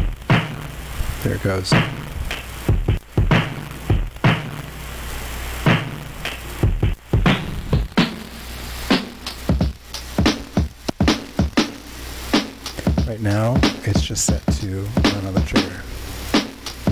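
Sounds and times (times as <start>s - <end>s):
sampled drum hits: 0.0s - 0.7s, 1.7s - 4.7s, 5.7s - 15.8s.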